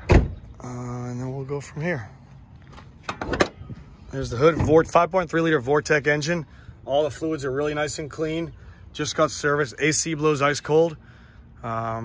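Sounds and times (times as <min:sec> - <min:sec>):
hood latch metallic clicks: 0:03.0 - 0:03.6.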